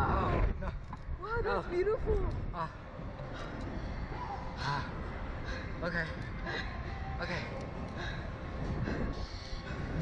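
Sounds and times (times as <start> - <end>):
wind buffeting microphone: 6.8 - 10.0.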